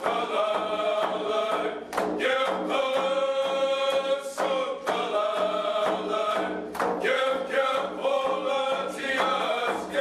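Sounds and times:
frame drum beat: 0.0s - 10.0s
men chanting long note: 0.0s - 10.0s.

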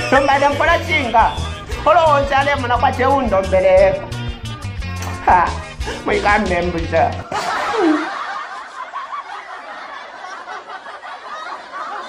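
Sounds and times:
group laughter: 7.2s - 12.0s.

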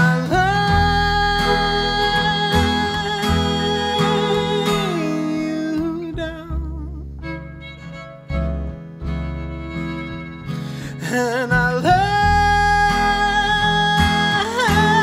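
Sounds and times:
acoustic guitar: 0.0s - 15.0s
upright bass: 0.0s - 15.0s.

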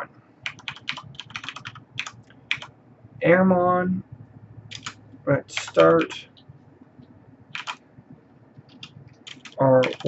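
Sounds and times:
computer keyboard typing: 0.4s - 2.7s, 4.7s - 6.2s, 7.5s - 7.8s, 8.6s - 10.0s.

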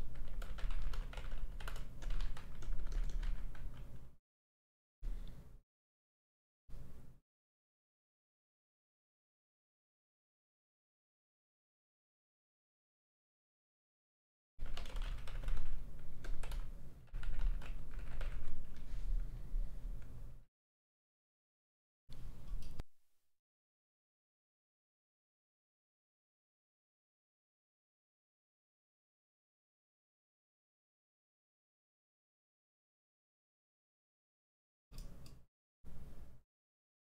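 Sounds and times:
keyboard typing clicks: 0.0s - 4.0s, 14.6s - 18.8s
steady low hum: 14.6s - 20.5s.

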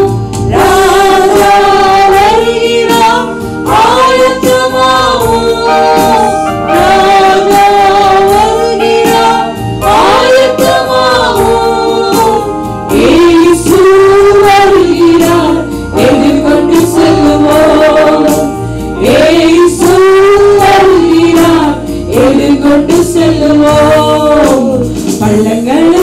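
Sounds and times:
musical backing: 0.0s - 26.0s
woman singing into microphone: 0.0s - 26.0s.

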